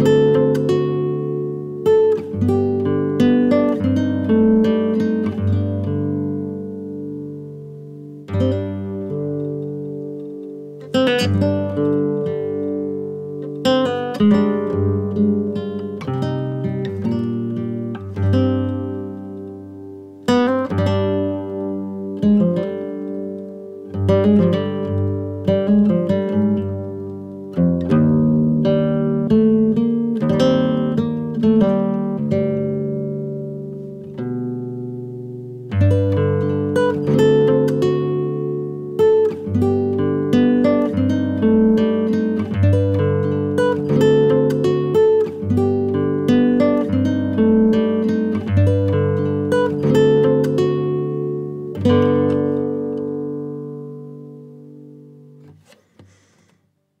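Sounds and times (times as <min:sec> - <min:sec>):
acoustic guitar picking: 0:00.0 - 0:56.8.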